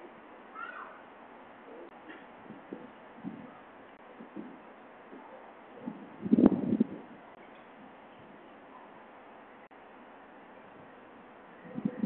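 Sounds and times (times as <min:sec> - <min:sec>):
faint background noise: 0:00.0 - 0:12.0
animal call: 0:00.5 - 0:01.0.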